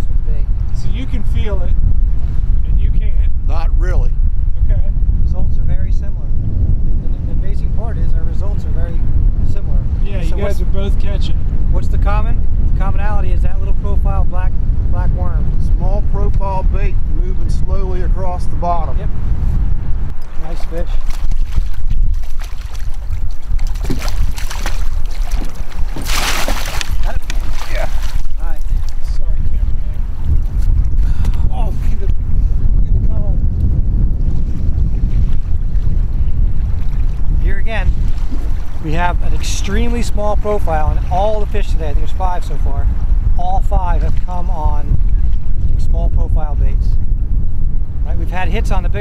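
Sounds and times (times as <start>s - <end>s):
wind buffeting microphone: 0.0s - 49.0s
heavy rumble: 21.6s - 49.0s.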